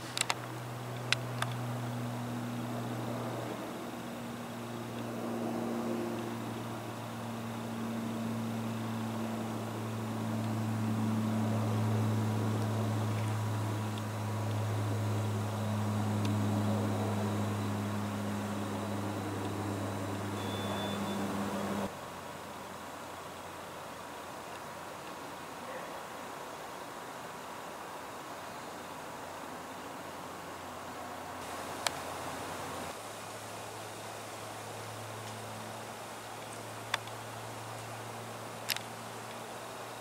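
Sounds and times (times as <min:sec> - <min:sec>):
propeller aircraft droning overhead: 0:00.0 - 0:21.9.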